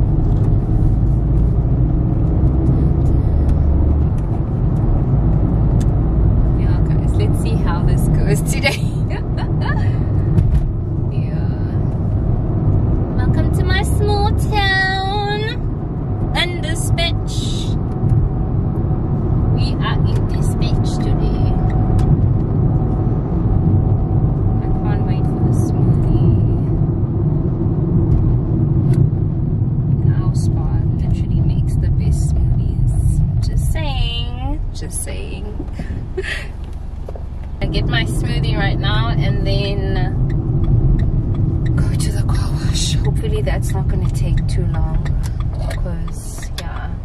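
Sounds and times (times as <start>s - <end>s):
car rumble from inside cabin: 0.0s - 47.0s.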